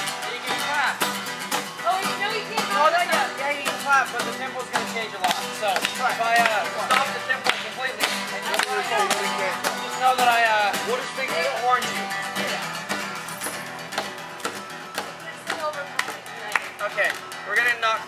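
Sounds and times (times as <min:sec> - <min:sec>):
acoustic guitar strumming: 0:00.0 - 0:18.0
people's voices: 0:00.0 - 0:18.0
sharp taps: 0:12.9 - 0:17.4.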